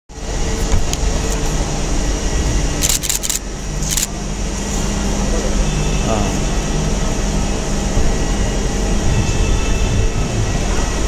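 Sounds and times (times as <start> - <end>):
traffic rumble: 0.1 - 11.0.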